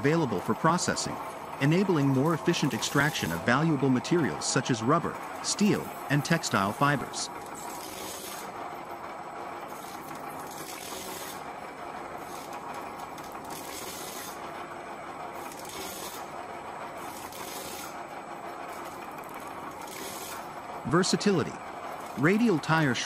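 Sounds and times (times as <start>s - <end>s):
tyre shredder running: 0.0s - 23.0s
rubber being cut scraping: 7.6s - 8.5s, 15.4s - 16.3s, 17.0s - 18.0s.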